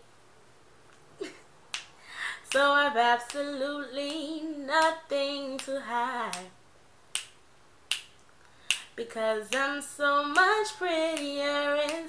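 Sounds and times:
finger snaps: 1.7s - 4.2s, 5.6s - 9.7s, 10.3s - 12.0s
person singing unaccompanied: 2.3s - 6.6s, 8.7s - 12.0s.

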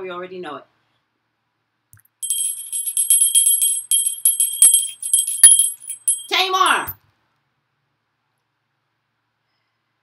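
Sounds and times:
small hand bell ringing: 2.2s - 7.0s.

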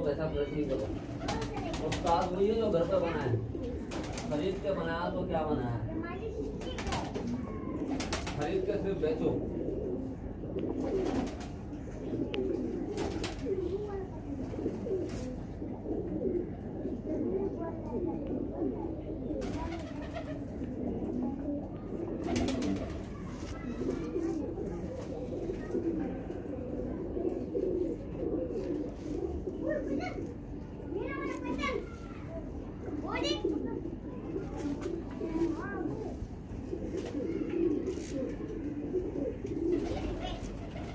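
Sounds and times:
pigeons cooing: 0.0s - 40.9s.

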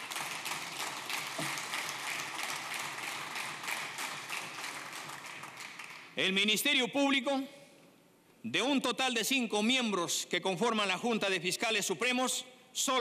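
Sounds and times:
audience applauding: 0.0s - 6.2s.

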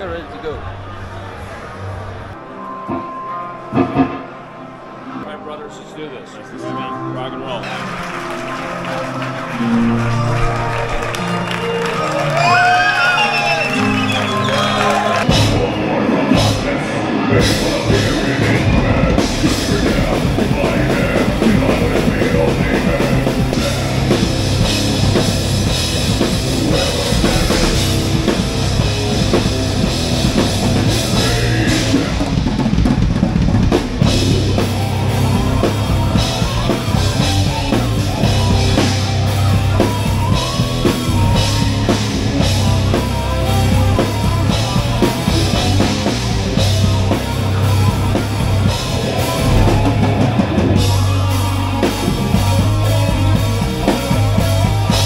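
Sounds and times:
heavy metal band playing live: 9.6s - 55.0s.

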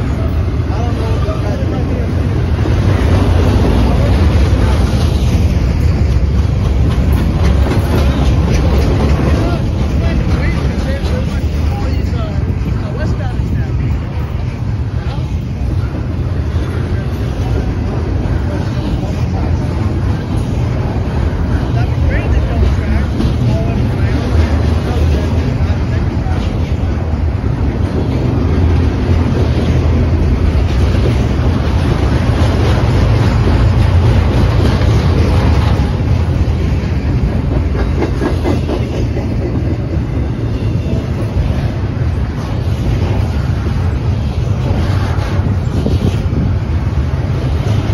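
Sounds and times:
freight train wheels rumbling: 0.0s - 47.9s.

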